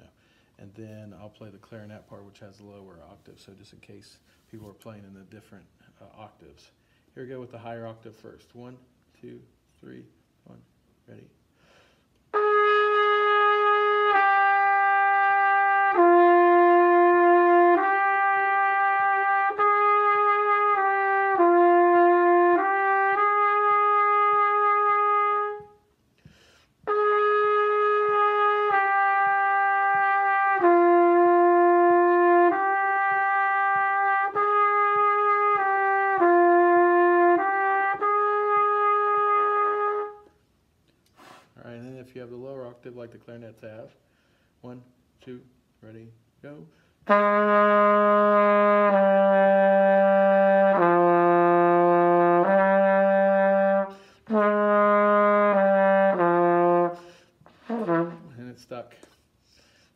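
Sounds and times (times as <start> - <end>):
breath: 0.1 - 0.6, 4.2 - 4.5, 6.8 - 7.1, 11.5 - 12.2, 26.2 - 26.8, 41.1 - 41.6, 44.0 - 44.6, 46.7 - 47.0, 53.9 - 54.3, 57.0 - 57.6, 59.0 - 59.9
trumpet playing held notes: 12.3 - 25.9, 26.8 - 40.4, 47.0 - 58.9.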